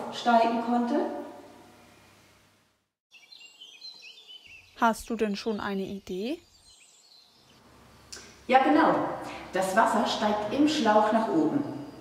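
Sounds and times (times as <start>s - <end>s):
birds chirping: 3.1s - 8.5s.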